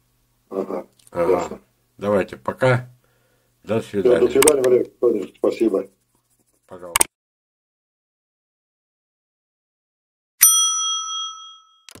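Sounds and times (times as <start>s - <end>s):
bright bell ding: 10.4s - 12.0s.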